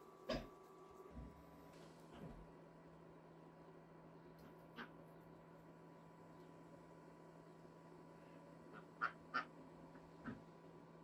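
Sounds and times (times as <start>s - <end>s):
quack-like animal calls: 8.7s - 9.5s.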